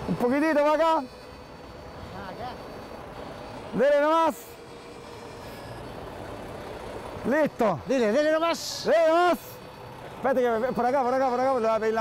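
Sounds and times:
diesel truck engine rumbling: 0.0s - 12.0s.

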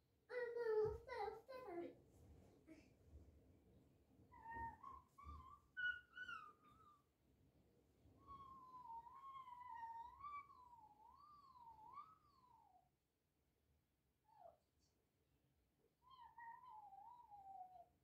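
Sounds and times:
faint high-pitched vocal calls: 4.3s - 7.1s, 16.0s - 17.9s.

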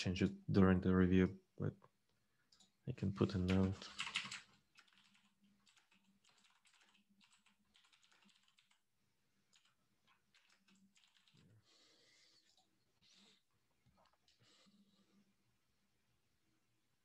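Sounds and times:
faint keyboard typing: 2.4s - 15.0s.

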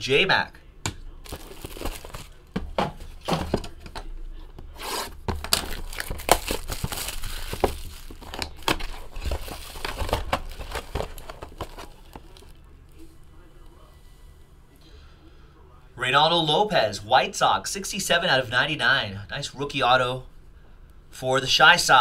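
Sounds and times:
plastic wrap crinkling and tearing: 1.2s - 2.5s, 4.8s - 12.6s.

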